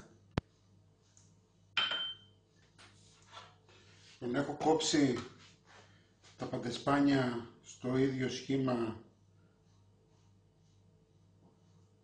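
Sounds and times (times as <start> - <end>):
metal spoon clinking bowl: 1.8 - 2.3.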